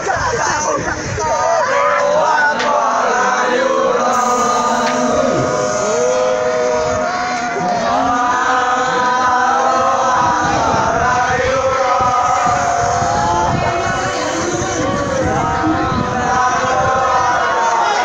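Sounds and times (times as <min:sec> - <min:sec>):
boys chanting a cheer: 0:00.0 - 0:18.0.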